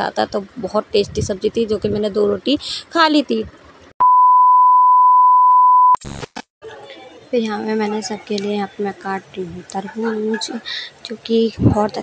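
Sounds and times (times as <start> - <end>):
high-pitched test-tone beep: 4.0 - 6.0
static crackle: 5.7 - 6.5.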